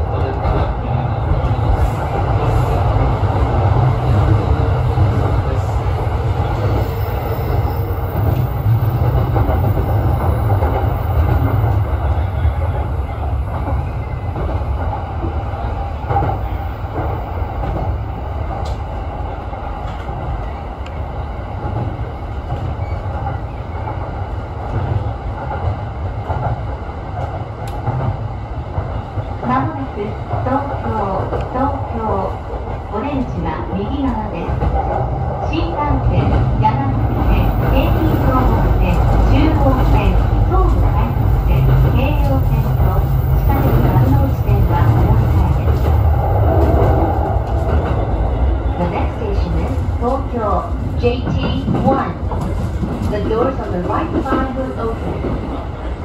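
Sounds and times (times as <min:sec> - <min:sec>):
train wheels rumbling on rail: 0:00.0 - 0:56.0.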